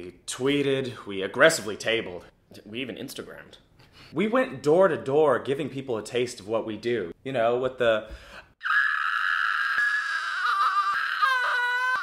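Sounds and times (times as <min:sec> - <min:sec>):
man imitating modem screech: 0:08.6 - 0:12.0.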